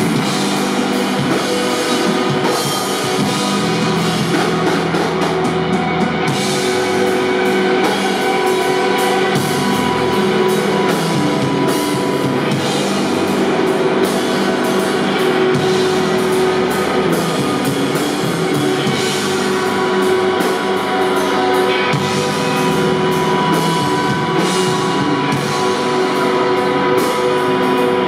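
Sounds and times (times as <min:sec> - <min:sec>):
bass guitar: 0:00.0 - 0:28.0
distorted electric guitars: 0:00.0 - 0:28.0
drum kit: 0:00.0 - 0:28.0.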